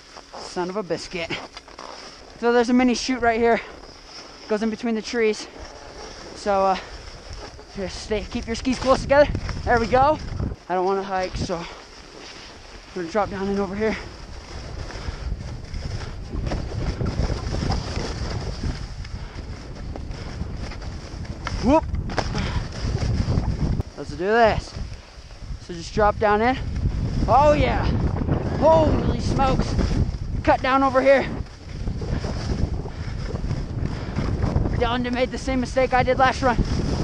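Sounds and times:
skis sliding over snow: 0.0s - 37.0s
wind buffeting microphone: 0.7s - 37.0s
man speaking: 13.0s - 14.0s, 27.3s - 28.0s, 28.6s - 29.8s, 30.4s - 31.4s.

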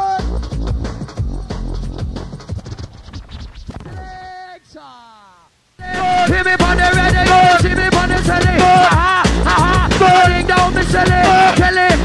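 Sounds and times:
drum and bass music: 0.1s - 3.9s, 5.8s - 12.0s
record scratching: 1.7s - 4.5s, 5.8s - 9.2s.

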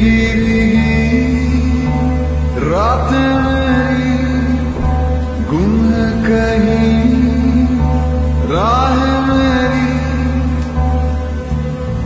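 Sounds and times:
background song: 0.0s - 12.0s
low drone: 0.0s - 12.0s
voice holding long notes: 0.0s - 12.0s.

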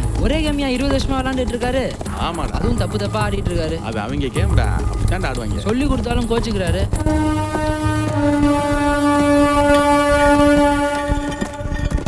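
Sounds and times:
long horn-like note: 7.0s - 12.0s.

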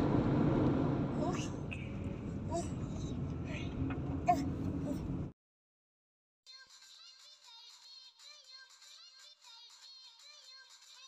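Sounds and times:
car cabin rumble: 0.0s - 5.3s.

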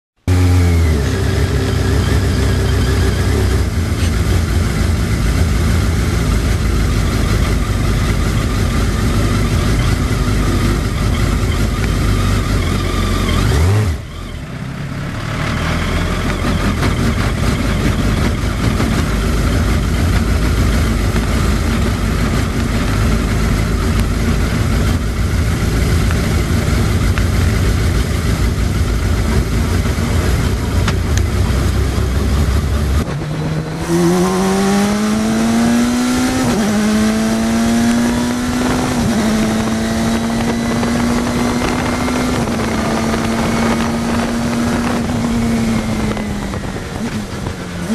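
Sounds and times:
car engine running: 0.2s - 47.9s.

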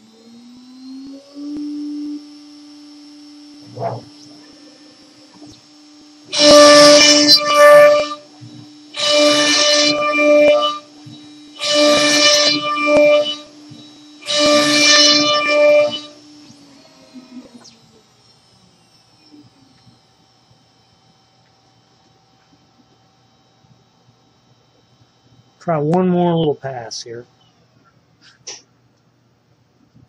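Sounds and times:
router bit cutting wood: 0.0s - 21.1s
router spindle whine: 0.0s - 28.6s.

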